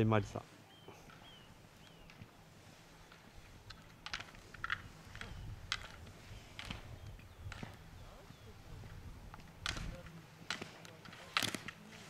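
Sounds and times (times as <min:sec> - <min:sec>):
plastic gate poles clacking: 0:03.0 - 0:07.8, 0:09.3 - 0:11.9.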